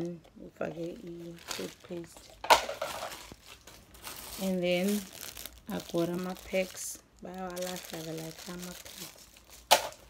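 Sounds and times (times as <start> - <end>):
plastic bag crinkling: 0.6 - 10.0.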